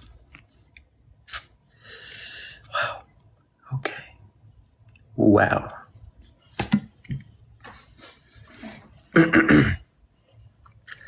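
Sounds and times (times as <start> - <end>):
person clearing throat: 9.1 - 9.9.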